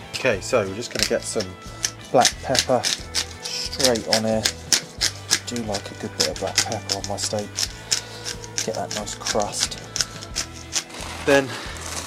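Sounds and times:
background music: 0:00.0 - 0:12.0
pepper grinder crackling: 0:00.9 - 0:12.0.

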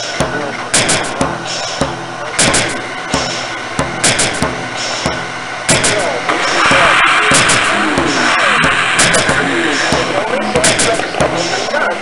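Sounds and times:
droning tones: 0:00.0 - 0:12.0
loud hiss: 0:00.0 - 0:12.0
repeated sharp hits: 0:00.0 - 0:12.0.

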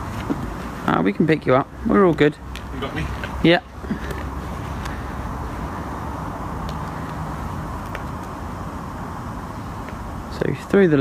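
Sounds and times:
distant road traffic hum: 0:00.0 - 0:11.0.

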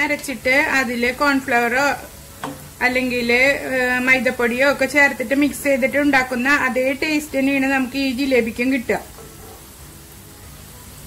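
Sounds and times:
faint background music: 0:00.0 - 0:11.0
food sizzling in hot oil: 0:00.0 - 0:11.0.

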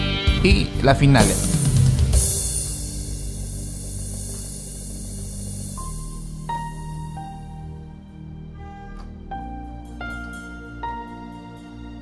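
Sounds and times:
keyboard held chord: 0:00.0 - 0:12.0
high piano-like note: 0:08.5 - 0:11.2.

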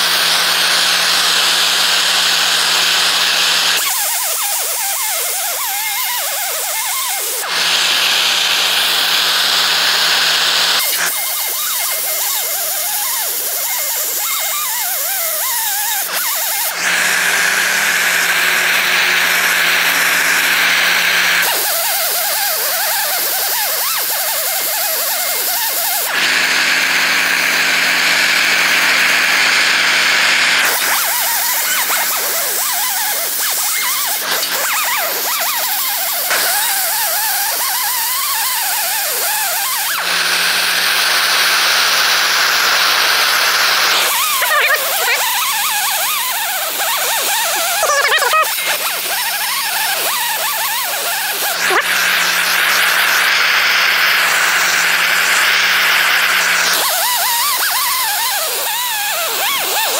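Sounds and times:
wire wheel grinder whining: 0:00.0 - 0:59.9.

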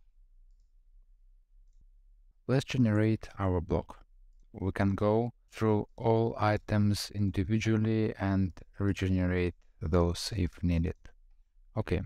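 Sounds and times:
computer mouse clicks: 0:00.4 - 0:00.8, 0:01.6 - 0:01.9.

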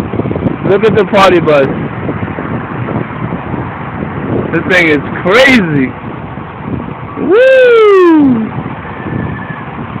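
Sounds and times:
low rumble of street traffic: 0:00.0 - 0:10.0
man shouting woo: 0:07.2 - 0:08.5.

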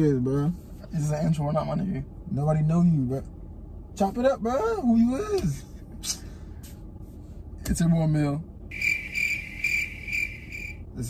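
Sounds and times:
crickets chirping: 0:08.7 - 0:10.9.

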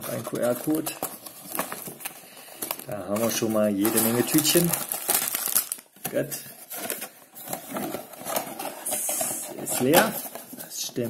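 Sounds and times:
plastic bags rustling: 0:00.0 - 0:11.0.

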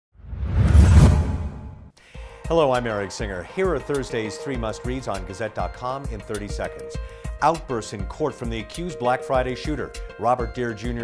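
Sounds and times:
whoosh with deep rumble: 0:00.2 - 0:01.9.

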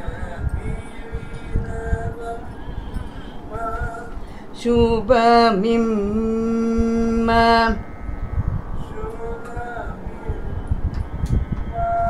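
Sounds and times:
low uneven rumbling noise: 0:00.0 - 0:12.0
voice singing a held note: 0:00.0 - 0:12.0.

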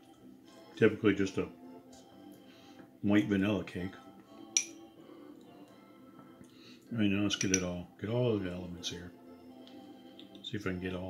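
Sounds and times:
faint background music: 0:00.0 - 0:11.0
metal spoon clinking glass bowl: 0:04.6 - 0:04.8.

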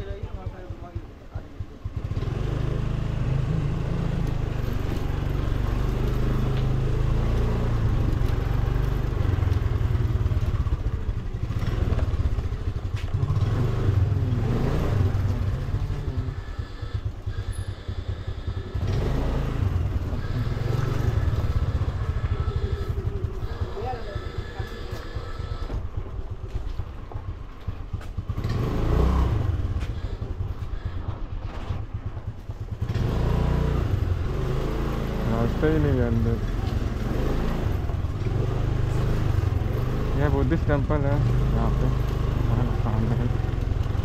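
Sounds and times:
motor scooter engine: 0:00.0 - 0:44.0.

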